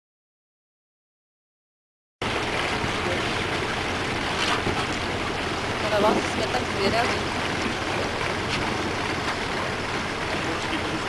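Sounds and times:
water rushing: 2.2 - 11.0.

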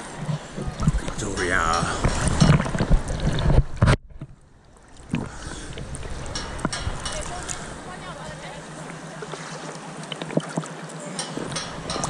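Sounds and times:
muffled underwater hush: 0.0 - 12.0
sea waves splashing: 0.0 - 12.0.

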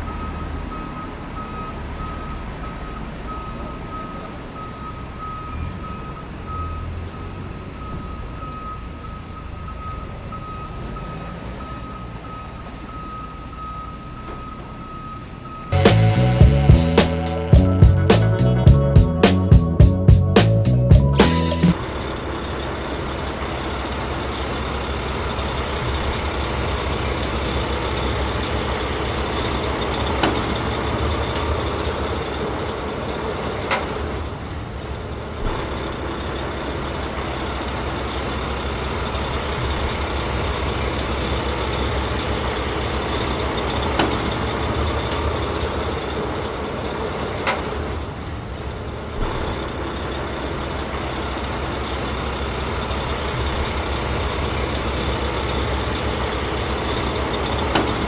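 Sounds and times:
truck engine running: 0.0 - 58.0.

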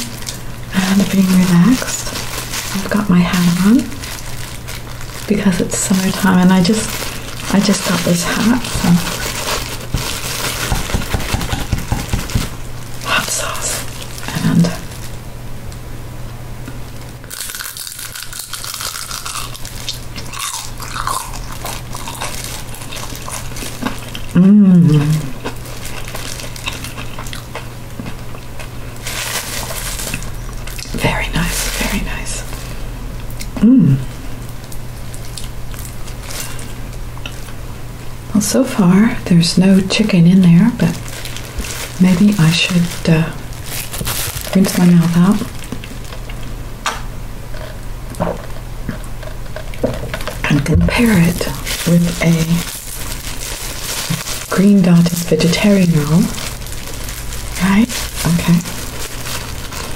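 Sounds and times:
crunchy food chewing: 17.2 - 33.6, 34.5 - 37.6, 51.1 - 59.9
person humming: 24.3 - 25.4, 33.5 - 34.2.

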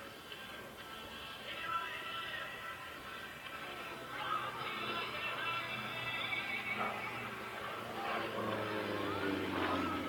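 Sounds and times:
propeller plane engine drone: 4.4 - 10.0.

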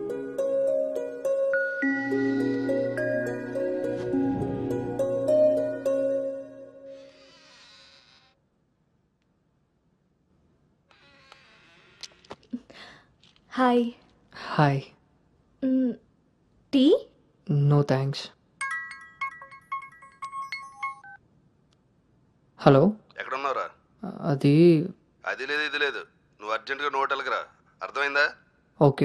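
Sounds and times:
mobile phone ringtone: 0.0 - 7.0, 18.6 - 21.2.

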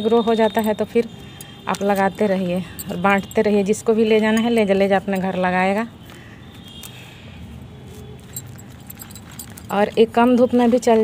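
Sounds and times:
light clicks and clinks: 0.5 - 5.6, 8.2 - 11.0
rustling of plant and soil: 1.6 - 11.0.

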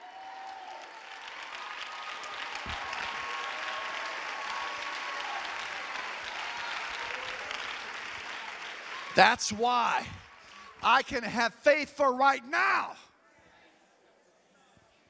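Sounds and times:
congregation applauding: 0.0 - 13.0.

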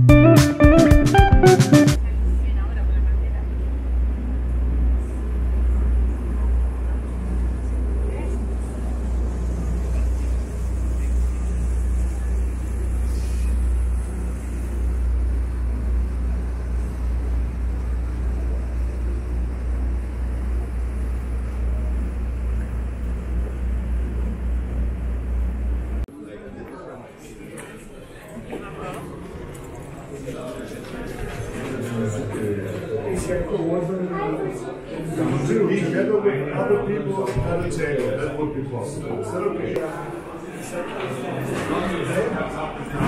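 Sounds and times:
boat engine drone: 2.0 - 26.0.

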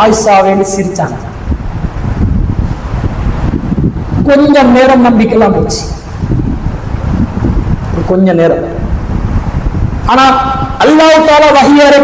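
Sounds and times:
air buffeting microphone: 0.0 - 12.0.

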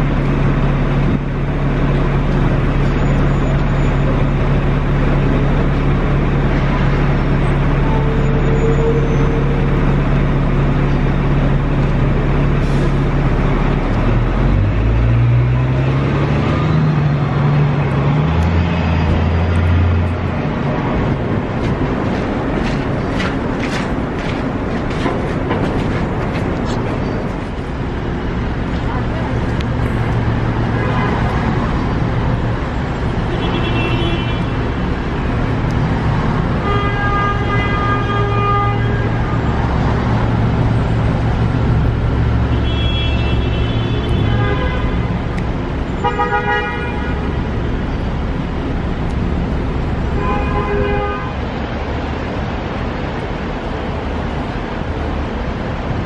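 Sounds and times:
low engine drone: 0.0 - 56.0
car horn honks: 33.3 - 34.6, 36.6 - 39.4, 42.5 - 45.2, 46.0 - 47.4, 50.1 - 51.4.

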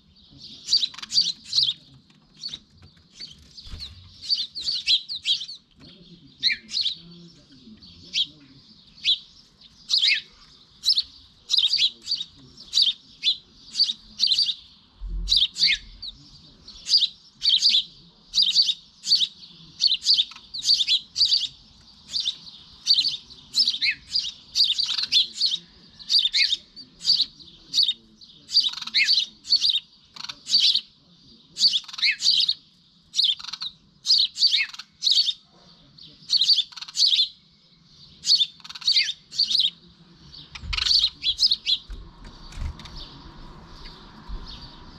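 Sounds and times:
sparrow chirping: 0.0 - 44.9.

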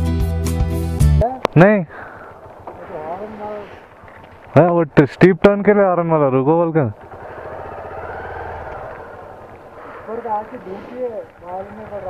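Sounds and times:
motorcycle rumbling on wet road: 2.0 - 4.6, 6.2 - 12.0.

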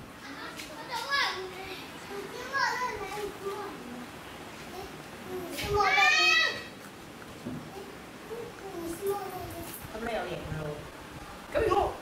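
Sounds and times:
children calling out: 4.7 - 6.8.

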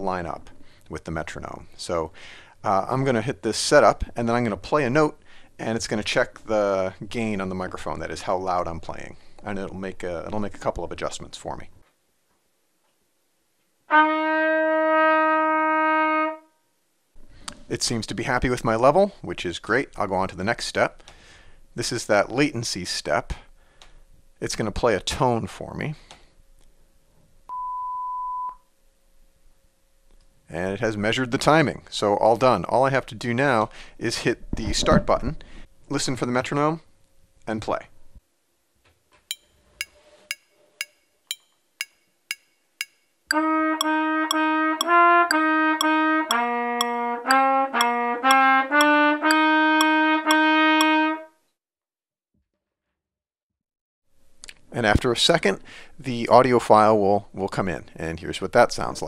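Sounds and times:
trumpet playing long note: 13.9 - 16.5, 43.3 - 51.3
metronome clicks: 39.3 - 50.9.

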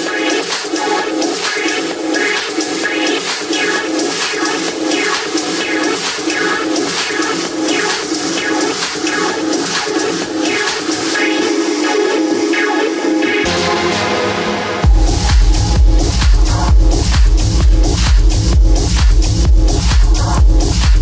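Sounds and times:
minimal techno music: 0.0 - 21.0.

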